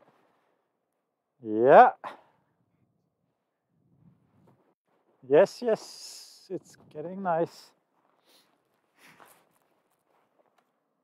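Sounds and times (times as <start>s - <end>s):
man exclaiming: 1.4s - 2.2s.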